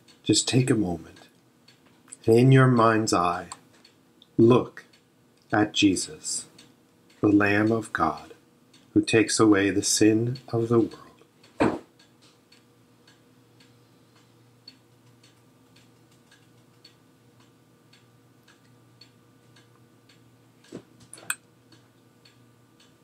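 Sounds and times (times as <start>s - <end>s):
faint regular ticking: 0.0s - 23.0s
low steady hum: 0.0s - 23.0s.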